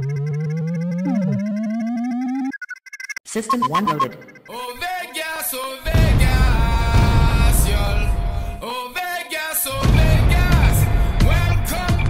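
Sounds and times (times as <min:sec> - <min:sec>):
short falling synth sweep: 0:00.0 - 0:02.6
buzzy synth tone rising: 0:00.0 - 0:04.5.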